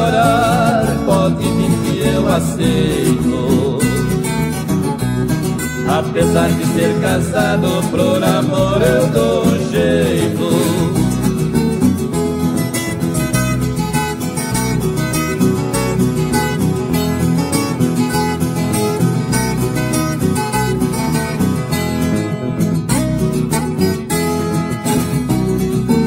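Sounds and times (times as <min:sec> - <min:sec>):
plucked guitars syncopated rhythm: 0:00.0 - 0:26.0.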